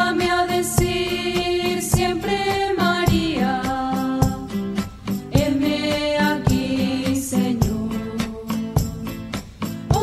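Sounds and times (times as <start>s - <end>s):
devotional music with beat: 0.0s - 10.0s.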